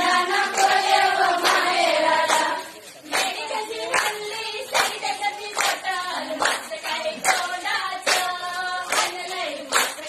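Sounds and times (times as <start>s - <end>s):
group of voices singing: 0.0s - 10.0s
hand claps: 0.0s - 10.0s.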